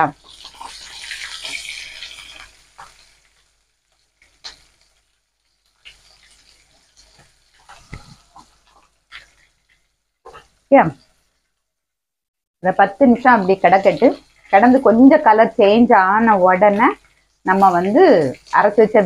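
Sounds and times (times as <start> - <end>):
vegetables sizzling in oil: 0.0 - 11.6, 12.7 - 19.0.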